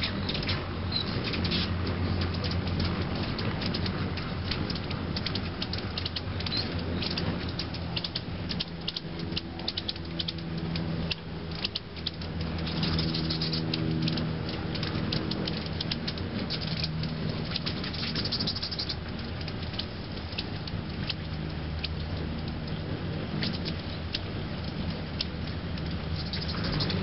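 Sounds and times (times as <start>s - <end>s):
high bird chips and ticks: 0.0s - 27.0s
hummingbird wings humming: 0.0s - 27.0s.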